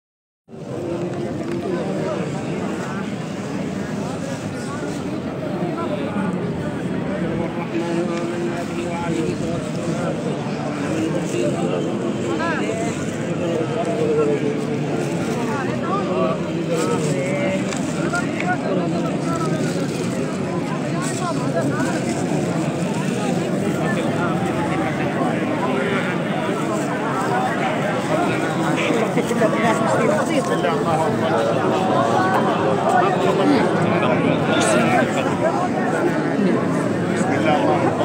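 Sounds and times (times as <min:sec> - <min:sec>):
crowd babble: 0:00.5 - 0:38.0.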